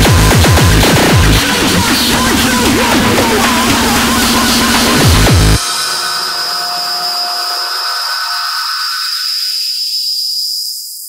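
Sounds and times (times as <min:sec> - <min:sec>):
synthesized hiss with high whistling tone: 0:05.6 - 0:11.0.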